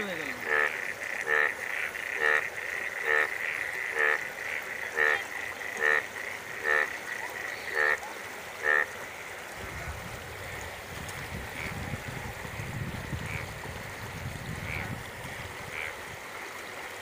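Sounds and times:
frog croaking: 0.0 - 9.0, 11.5 - 12.0, 13.0 - 16.0.

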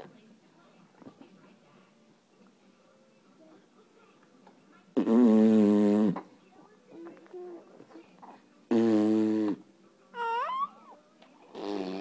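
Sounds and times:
baby squealing: 10.2 - 11.0.

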